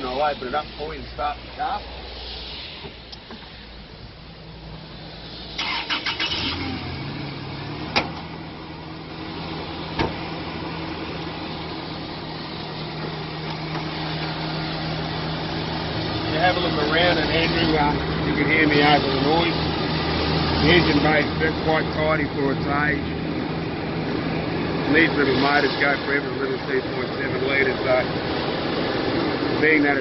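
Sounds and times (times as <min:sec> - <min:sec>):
engine cranking and idling: 0:05.5 - 0:30.0.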